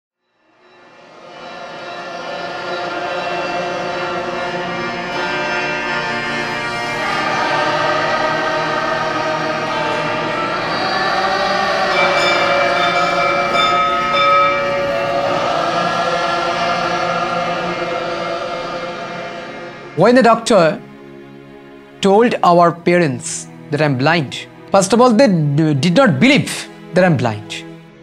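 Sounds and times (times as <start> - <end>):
group of voices chanting: 1.0 - 20.0.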